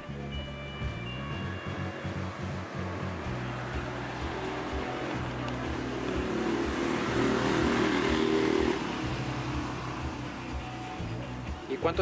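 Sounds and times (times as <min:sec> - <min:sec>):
background music: 0:00.0 - 0:12.0
motor vehicle passing: 0:01.1 - 0:12.0.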